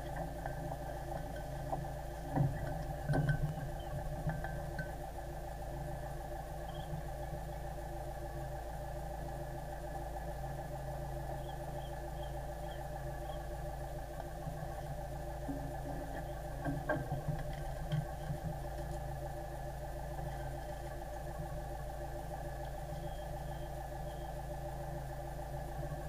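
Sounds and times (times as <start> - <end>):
boat engine humming: 0.0 - 26.0.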